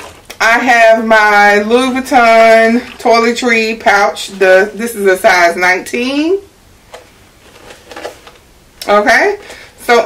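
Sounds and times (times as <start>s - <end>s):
woman speaking: 0.4s - 6.5s, 8.8s - 10.0s
pouch handling clicks and rustles: 6.9s - 8.4s.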